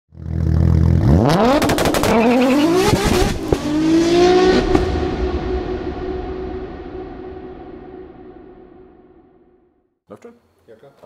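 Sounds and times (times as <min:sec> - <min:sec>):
car engine revving: 0:00.2 - 0:09.2.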